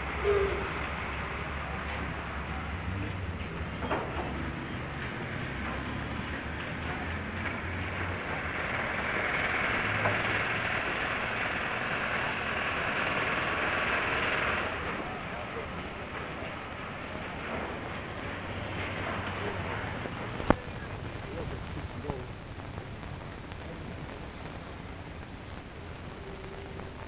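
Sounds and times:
building site din: 0.0s - 27.0s
film soundtrack hiss and hum: 0.0s - 27.0s.

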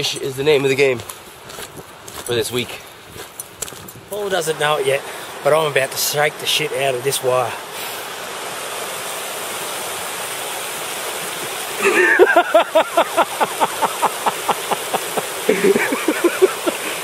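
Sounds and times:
river water running: 0.0s - 17.0s.

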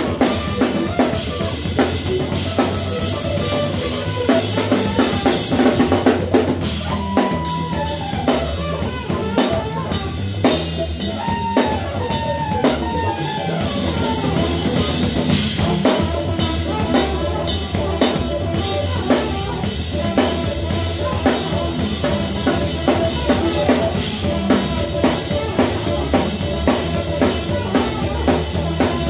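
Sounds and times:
funk band playing: 0.0s - 29.0s.

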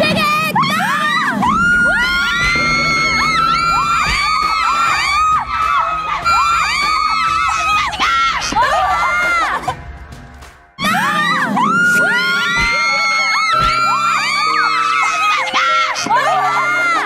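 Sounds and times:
young women screaming: 0.5s - 9.8s, 10.8s - 17.0s.

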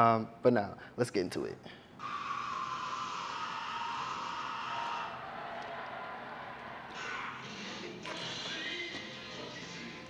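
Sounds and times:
film soundtrack over loudspeakers: 1.9s - 10.0s.

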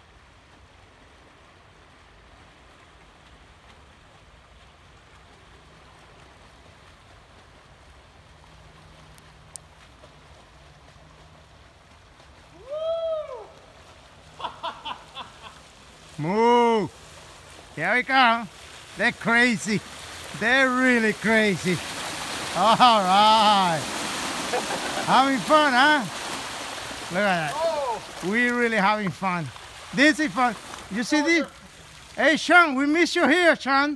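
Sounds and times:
bike tyres splashing through water: 0.0s - 33.9s
person crying out: 12.6s - 13.4s, 27.5s - 28.1s
person whooping: 12.6s - 13.6s, 27.5s - 28.1s.

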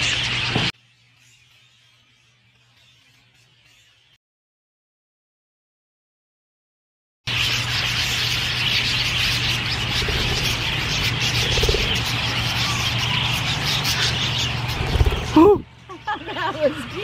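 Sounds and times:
budgerigars chattering: 7.3s - 17.0s.

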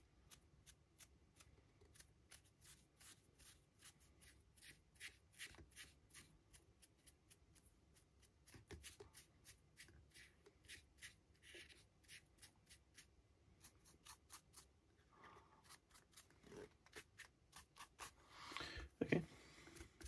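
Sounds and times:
paintbrush scratching on surface: 8.2s - 18.2s.

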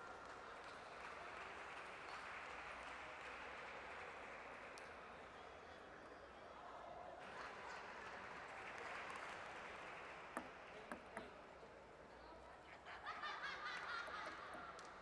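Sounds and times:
table tennis ball bouncing: 10.3s - 11.4s, 14.0s - 15.0s.

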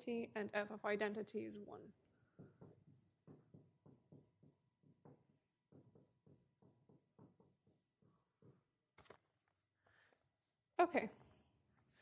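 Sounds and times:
marker writing on whiteboard: 1.6s - 10.5s.

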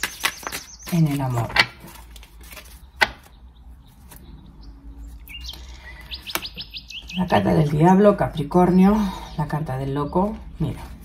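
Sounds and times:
cards clicking: 0.0s - 3.3s
high bird-like chirps: 2.8s - 7.9s.

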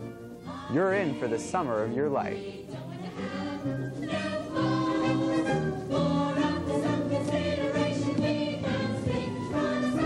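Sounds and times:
musical accompaniment: 0.0s - 10.0s
group of voices singing: 0.4s - 10.0s.

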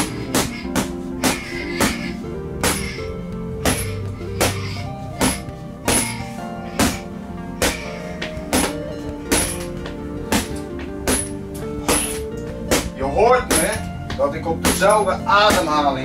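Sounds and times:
sticks striking punching bag: 0.0s - 6.2s, 6.8s - 15.9s
background music: 0.0s - 16.0s.

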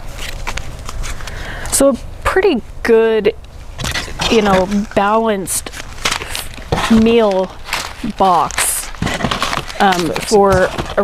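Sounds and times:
foil pouches crinkling: 0.0s - 1.8s, 3.6s - 11.0s.

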